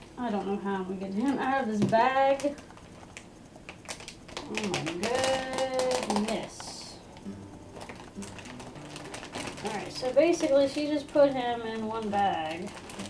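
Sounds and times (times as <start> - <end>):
plastic bag crinkling: 2.3 - 13.0.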